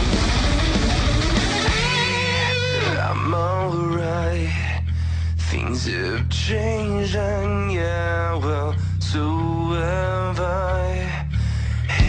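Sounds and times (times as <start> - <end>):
hard rock band beat: 0.0 - 3.6
wavering electric guitar line: 0.0 - 4.6.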